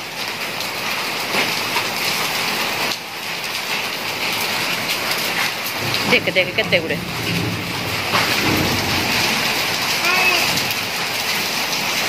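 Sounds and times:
heavy rain and hail on paving: 0.0 - 12.0.

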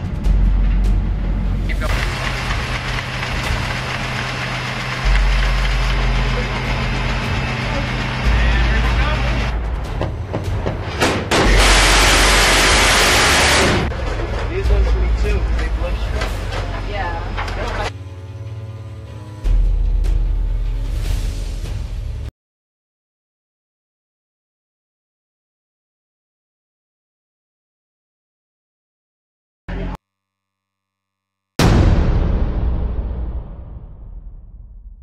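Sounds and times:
ship machinery hum: 0.3 - 10.9.

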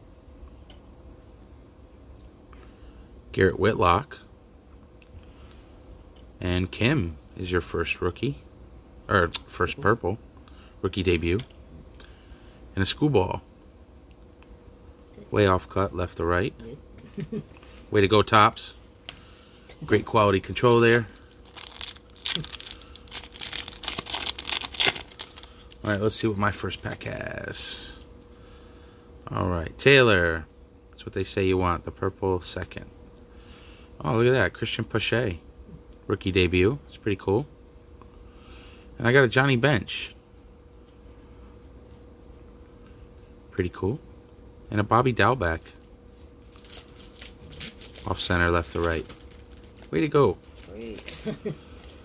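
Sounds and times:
card pack wrapper tearing and crinkling: 20.5 - 27.0, 46.4 - 51.4.

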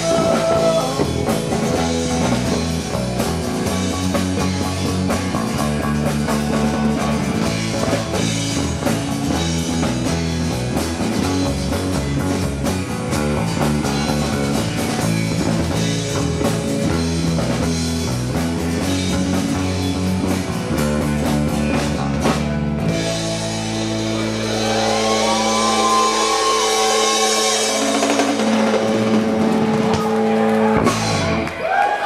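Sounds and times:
drum kit: 0.0 - 32.0
electric bass: 0.0 - 32.0.

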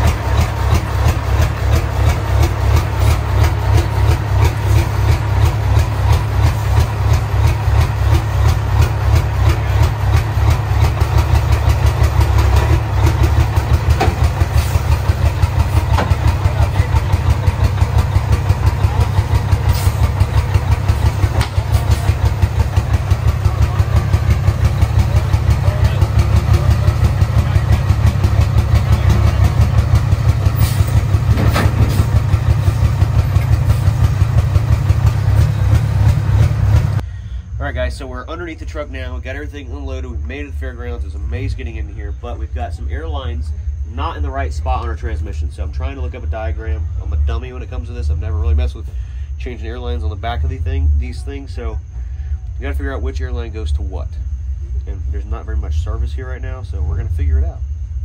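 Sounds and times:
diesel truck engine idling: 0.0 - 58.0.

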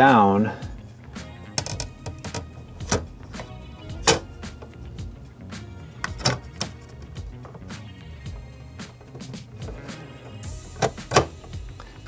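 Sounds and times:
film holder clicking and tapping: 1.5 - 5.1, 6.0 - 7.7, 10.8 - 11.6.

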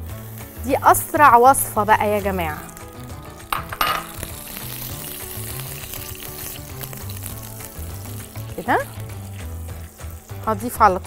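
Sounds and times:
butter and oil sizzling in pan: 0.0 - 11.0
low background music: 0.0 - 11.0.

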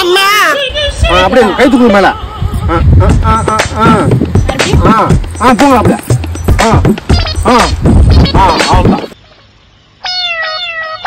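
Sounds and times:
cat meowing: 10.0 - 11.0.

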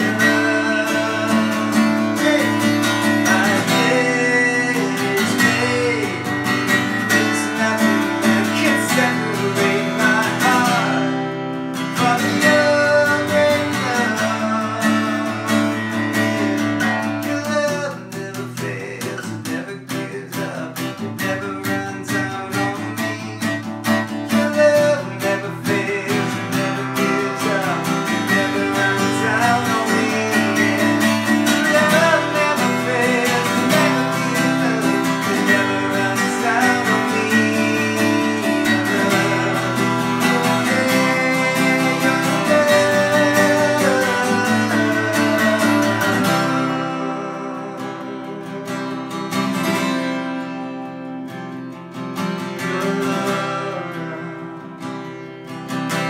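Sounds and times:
man singing: 0.0 - 56.0
strummed acoustic guitar: 0.0 - 56.0.

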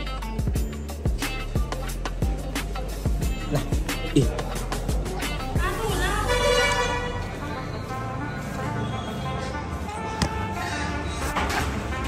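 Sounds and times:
vehicle horn long note: 6.1 - 10.9.

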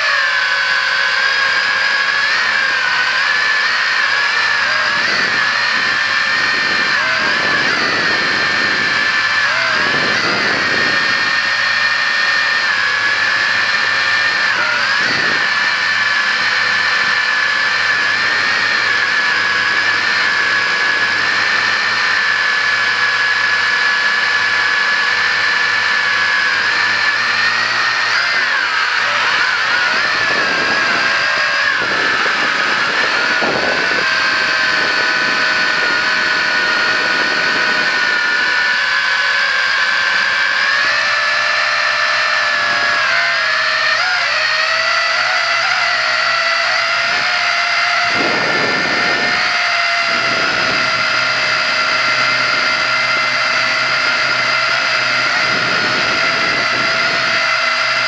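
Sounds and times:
quadcopter propellers whining: 0.0 - 58.0.

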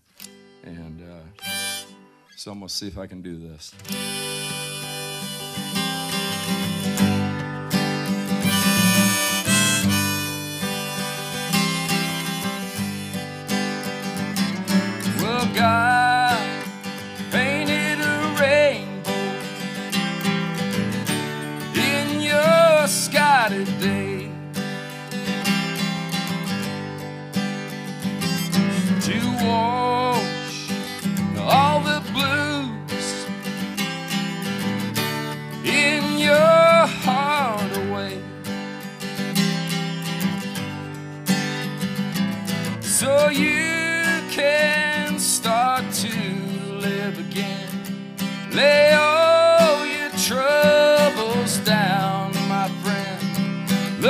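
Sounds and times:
acoustic guitar strumming: 0.0 - 2.7, 3.7 - 54.0
harmonica with bent notes: 1.1 - 2.5, 3.8 - 38.2.

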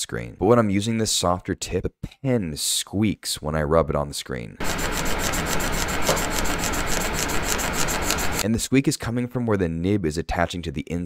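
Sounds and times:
pen nib squeaking on glass screen: 4.6 - 8.4.

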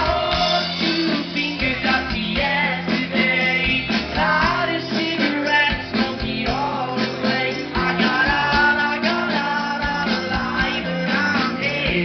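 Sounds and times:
drum beat: 0.0 - 12.0
guitar: 0.0 - 12.0
live rock band: 0.0 - 12.0.

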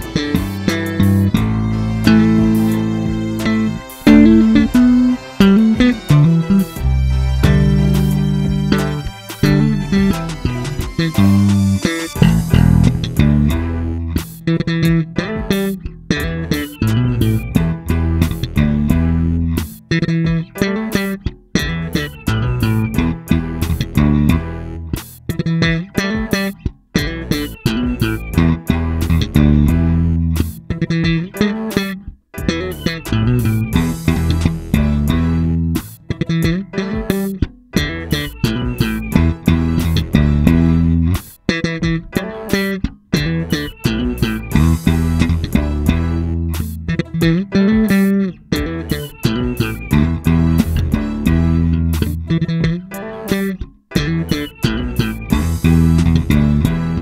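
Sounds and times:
electric bass guitar solo: 0.0 - 57.0.

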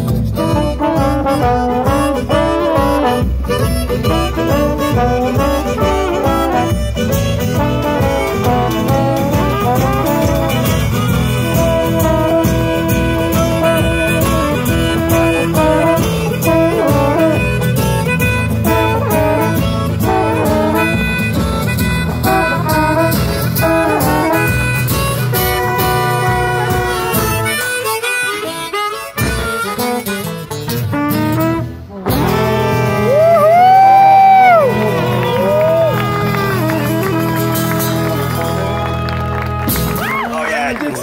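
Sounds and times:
washboard beat: 0.0 - 38.8
trombone: 0.0 - 40.1
saxophone: 0.0 - 41.0
trumpet: 0.0 - 41.0.

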